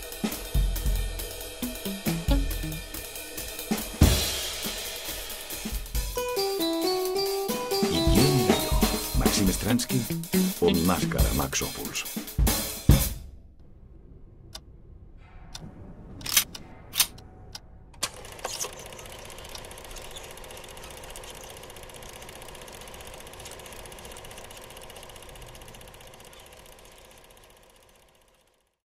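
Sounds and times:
film projector running: 0:18.0 - 0:28.8.

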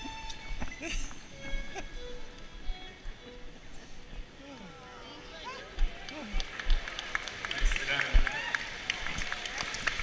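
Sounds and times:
people chattering and laughing: 0:00.0 - 0:10.0
sharp claps: 0:05.8 - 0:10.0.

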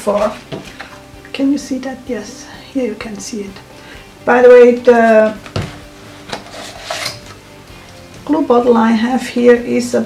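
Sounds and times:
scratchy rubbing of plastic: 0:06.3 - 0:07.4.

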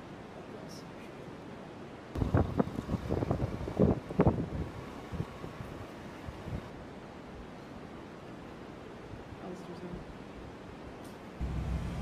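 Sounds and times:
wind buffeting microphone: 0:02.2 - 0:06.7.

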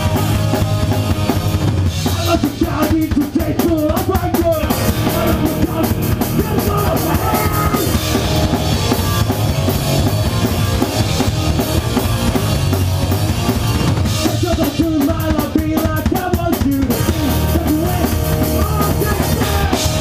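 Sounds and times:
electric guitar line: 0:00.0 - 0:03.2, 0:04.3 - 0:20.0
rock band playing live: 0:00.0 - 0:20.0.

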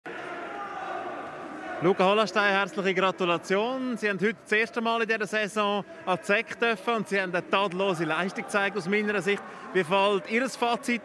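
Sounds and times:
man speaking: 0:01.8 - 0:11.0.

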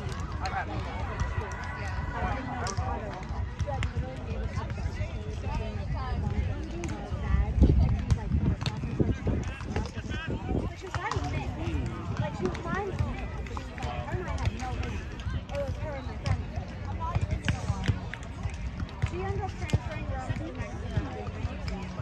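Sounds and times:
people talking and calling out: 0:00.0 - 0:22.0.

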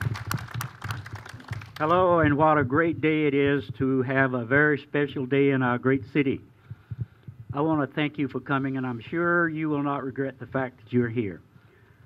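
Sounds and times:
man speaking into microphone: 0:01.8 - 0:06.6, 0:07.5 - 0:11.5
microphone handling clicks and knocks: 0:06.0 - 0:07.9.

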